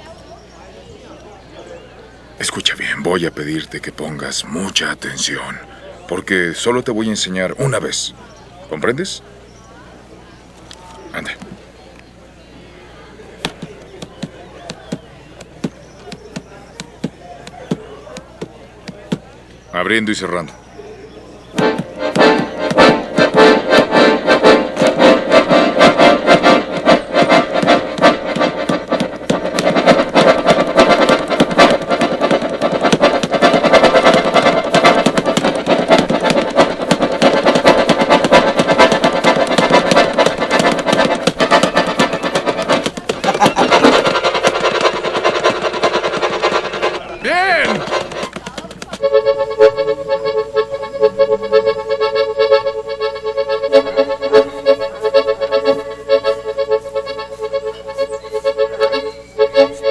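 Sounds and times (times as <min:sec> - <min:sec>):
accordion playing lively tune: 0:13.4 - 0:19.2, 0:21.5 - 0:59.9.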